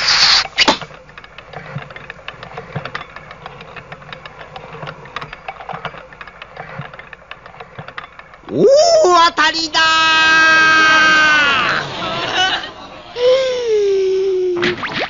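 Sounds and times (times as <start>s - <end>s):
spinning wheel clicking and rattling: 0.0s - 13.2s.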